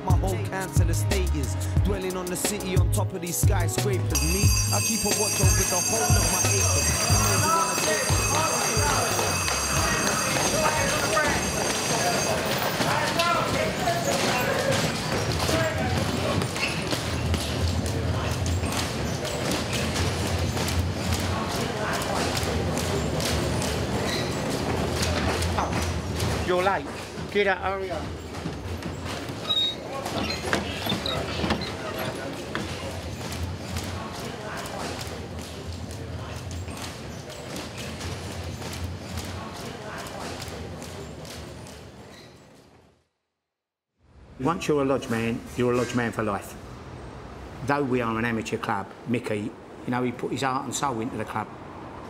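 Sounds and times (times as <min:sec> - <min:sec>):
bass-heavy music beat: 0:00.0 - 0:07.4
indistinct voices: 0:00.0 - 0:41.7
train running on rails: 0:04.4 - 0:14.6.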